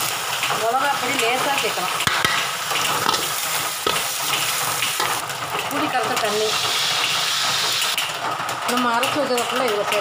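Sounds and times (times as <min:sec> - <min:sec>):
food sizzling in hot oil: 0:00.0 - 0:08.0
spoon clinking on pan: 0:02.0 - 0:04.1
spoon scraping a steel pan: 0:02.1 - 0:05.2.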